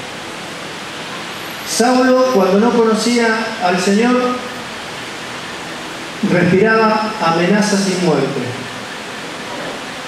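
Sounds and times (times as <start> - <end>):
steady background hiss: 0.0 - 10.0
man's amplified voice: 1.7 - 4.6, 6.2 - 8.7.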